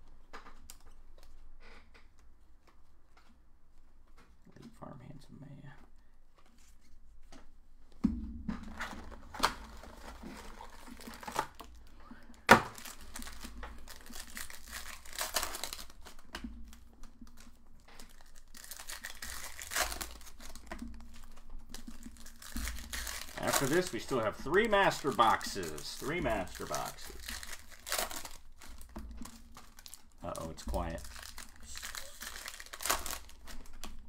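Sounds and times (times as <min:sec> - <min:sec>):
wrappers torn and crinkled: 0:09.0 - 0:11.9, 0:12.6 - 0:34.0.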